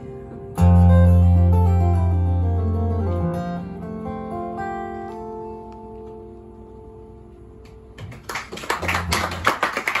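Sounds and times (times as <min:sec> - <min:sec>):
audience clapping: 0:08.0 - 0:10.0.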